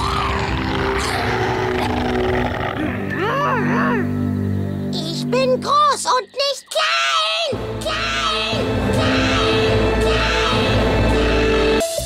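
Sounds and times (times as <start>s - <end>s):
low rumbling dinosaur growl: 0.0s - 3.3s
sustained music tones: 0.0s - 6.6s.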